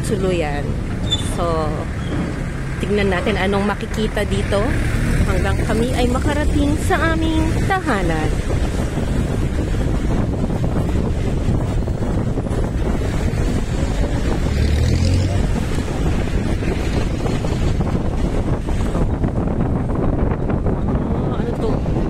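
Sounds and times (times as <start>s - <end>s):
vehicle road and engine rumble: 0.0s - 22.0s
wind buffeting microphone: 0.0s - 22.0s.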